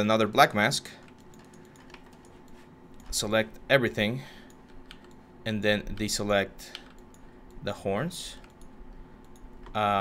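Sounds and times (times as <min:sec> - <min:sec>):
low steady hum: 0:00.0 - 0:10.0
keyboard and mouse clicks: 0:01.0 - 0:03.2, 0:08.3 - 0:09.8.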